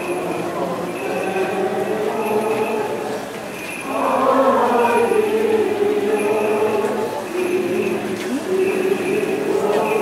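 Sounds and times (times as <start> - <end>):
group singing a slow hymn: 0.0 - 10.0.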